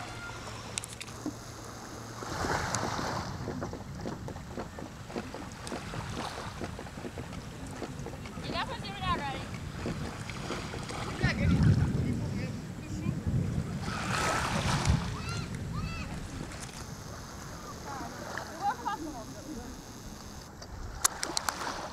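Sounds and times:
wind buffeting microphone: 2.2 - 21.0.

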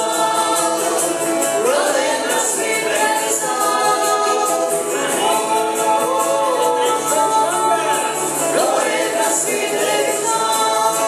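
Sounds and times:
picked banjo: 0.0 - 11.0
strummed acoustic guitar: 0.0 - 11.0
woman and man singing together: 0.0 - 11.0.

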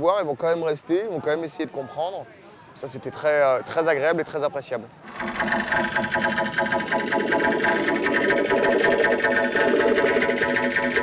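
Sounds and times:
dense layered synth tones: 5.0 - 11.0.

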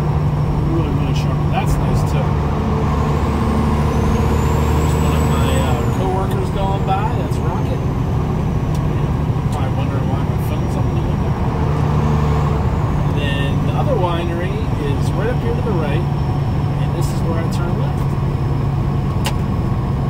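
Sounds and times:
diesel truck engine running: 0.0 - 20.0
road noise: 0.0 - 20.0.

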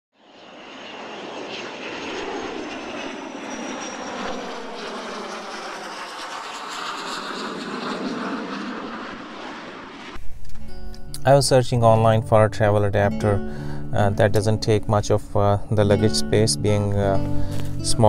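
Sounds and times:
steady rushing roar: 4.4 - 10.4.

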